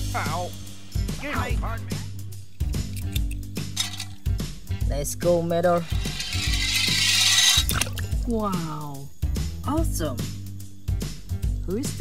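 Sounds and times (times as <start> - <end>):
background music: 0.0 - 12.0
toy car rattling down slide: 2.9 - 4.2, 5.8 - 8.2
sharp clicks into water: 7.6 - 8.1.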